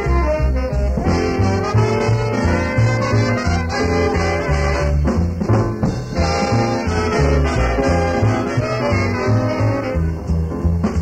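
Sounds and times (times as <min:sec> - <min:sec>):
jazz band playing swing: 0:00.0 - 0:11.0
walking bass line: 0:00.0 - 0:11.0.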